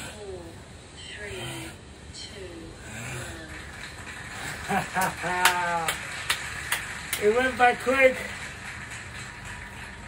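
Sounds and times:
man laughing: 4.6 - 5.9.

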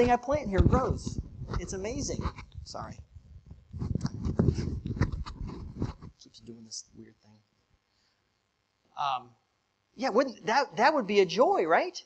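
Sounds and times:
heavy thumps on microphone: 0.0 - 2.8, 3.4 - 6.2
microphone rubbing and scratching: 0.0 - 6.6.

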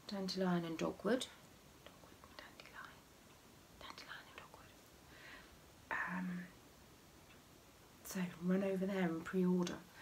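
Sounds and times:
person whispering: 1.9 - 3.0, 3.8 - 4.8, 5.9 - 6.6.

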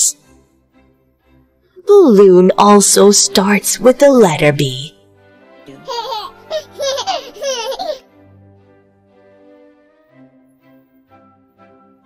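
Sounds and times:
soft background music: 0.0 - 12.0
small child laughing: 5.8 - 8.1.

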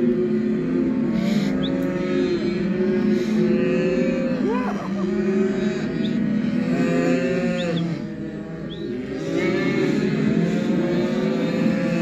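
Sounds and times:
calves mooing: 0.0 - 12.0.

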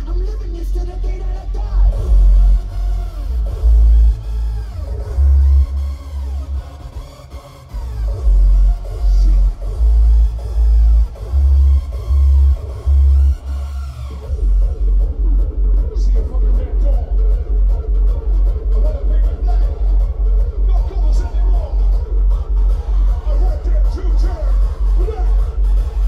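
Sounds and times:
distorted kick drums: 0.0 - 7.0, 7.7 - 26.0
hardstyle dance music: 0.0 - 26.0.

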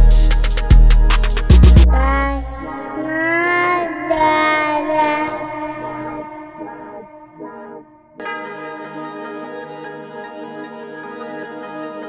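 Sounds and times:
high voice-like melodic lead: 1.7 - 9.8.

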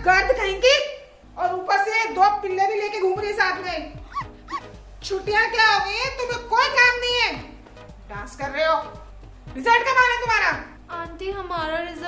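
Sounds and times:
background music: 0.0 - 12.0
girl wailing and crying: 4.0 - 4.7.

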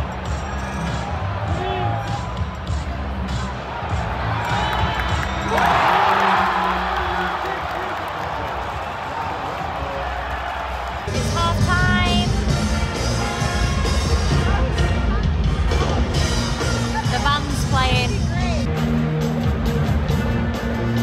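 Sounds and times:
music over sound system: 0.0 - 7.6, 10.8 - 21.0
crowd cheering loudly: 0.0 - 12.0
arena crowd noise: 0.0 - 21.0.

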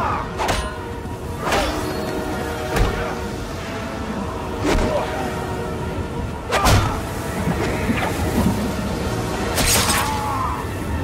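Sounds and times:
film music: 0.0 - 11.0.

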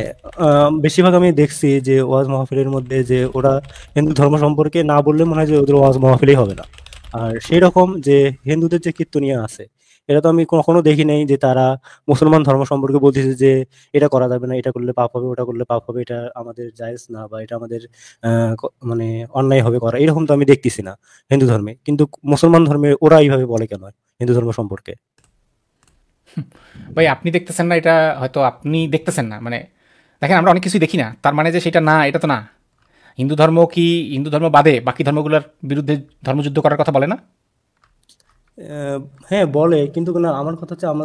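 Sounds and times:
person breathing: 3.7 - 4.0, 11.8 - 12.1, 26.5 - 27.0, 29.7 - 30.2, 32.8 - 33.2.

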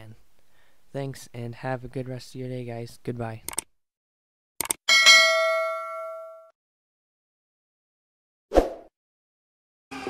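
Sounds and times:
notification bell ding: 4.9 - 6.5.

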